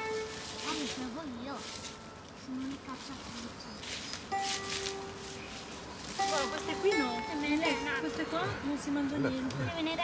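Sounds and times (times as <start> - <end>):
steady held musical note: 0.0 - 2.3, 4.3 - 9.1
dry leaves rustling: 0.0 - 10.0.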